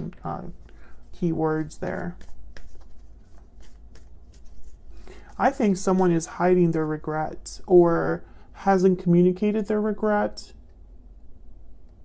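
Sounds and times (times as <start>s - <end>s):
low steady hum: 0.0s - 12.0s
cards clicking and rustling: 1.7s - 5.2s.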